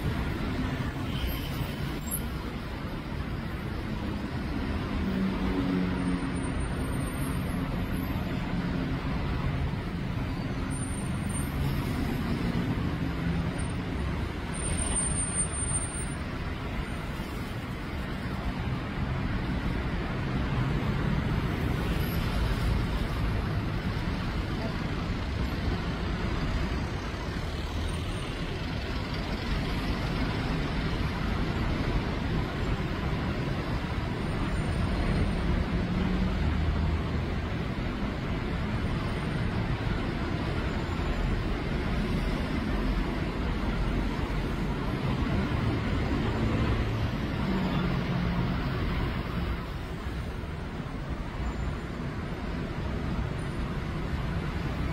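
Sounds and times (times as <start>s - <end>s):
road traffic: 0.0s - 54.9s.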